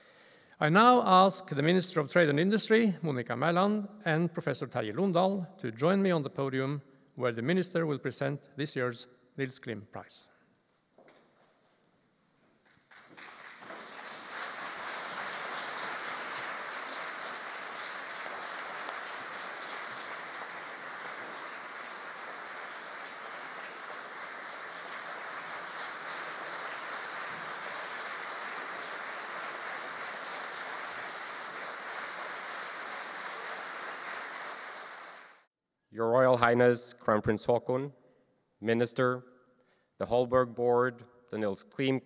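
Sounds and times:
audience applauding: 0:12.6 - 0:35.5.

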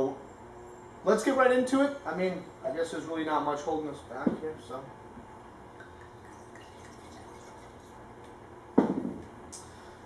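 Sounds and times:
wine pouring into a glass: 0:05.9 - 0:08.0
knock on wooden counter: 0:08.8 - 0:09.2.

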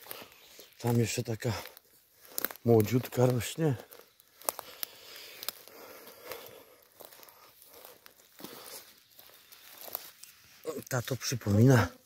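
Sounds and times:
twigs snapping: 0:00.0 - 0:11.3
footsteps through leaves and grass: 0:00.0 - 0:12.0.

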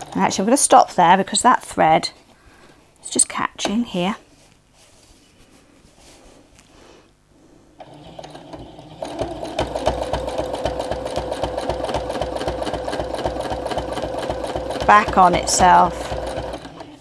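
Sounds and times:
sewing machine stitching: 0:00.0 - 0:00.7, 0:07.8 - 0:17.0.

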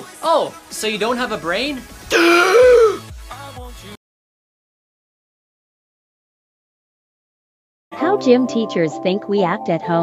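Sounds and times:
person's shocked cry: 0:02.1 - 0:03.0.

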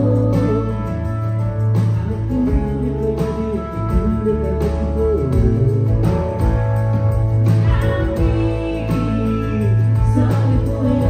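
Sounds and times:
live band playing: 0:00.0 - 0:11.0.

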